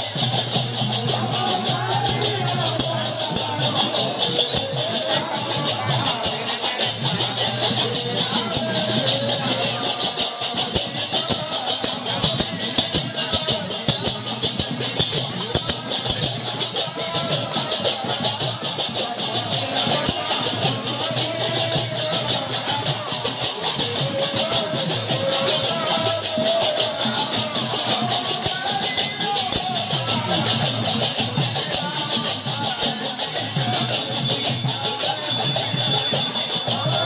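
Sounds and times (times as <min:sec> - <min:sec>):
brass hand cymbals clashing: 0:00.0 - 0:37.0
voices singing a chant: 0:00.0 - 0:37.0.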